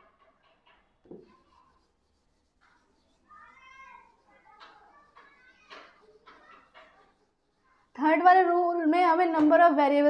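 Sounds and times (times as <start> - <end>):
duster wiping a whiteboard: 0.6 - 8.8.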